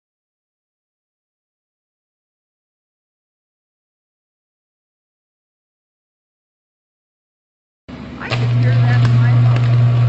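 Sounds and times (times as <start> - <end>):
power line electrical buzz: 7.9 - 10.0.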